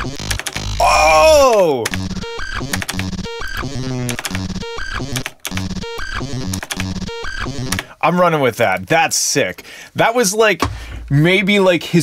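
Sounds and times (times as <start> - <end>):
gritty buzzy electronic bass drone: 0.0 - 1.3, 1.9 - 7.8.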